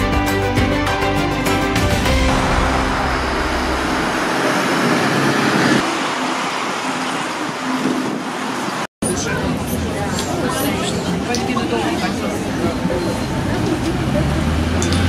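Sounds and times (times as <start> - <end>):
low rumble: 1.6 - 7.6
traffic noise: 2.1 - 15.0
crowd talking: 9.0 - 15.0.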